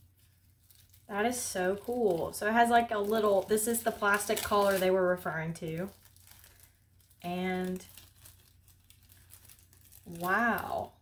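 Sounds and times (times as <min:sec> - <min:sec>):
low steady hum: 0:00.0 - 0:11.0
plastic packaging crinkling: 0:00.0 - 0:11.0.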